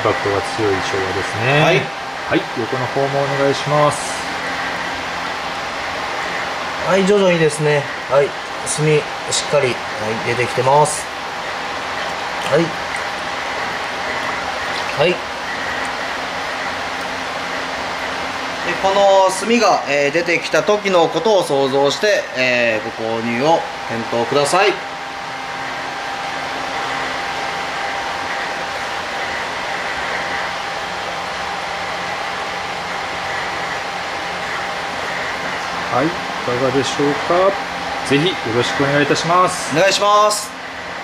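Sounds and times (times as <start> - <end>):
water rushing in a tub: 0.0 - 40.6
faint steady whine: 0.0 - 41.0
machinery hiss and hum: 0.0 - 41.0.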